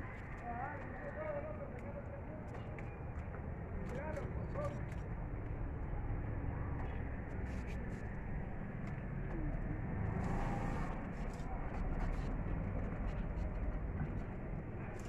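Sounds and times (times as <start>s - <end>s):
outdoor low rumble: 0.0s - 15.0s.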